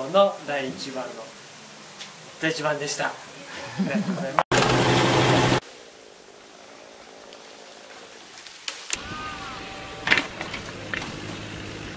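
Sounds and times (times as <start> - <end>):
steady hiss: 0.0 - 4.4, 5.6 - 11.9
tractor engine running: 4.5 - 5.6.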